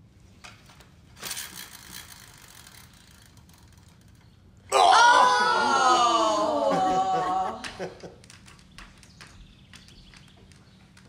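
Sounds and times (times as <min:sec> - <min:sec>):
plastic spinner wheel clicking: 0:01.1 - 0:04.3.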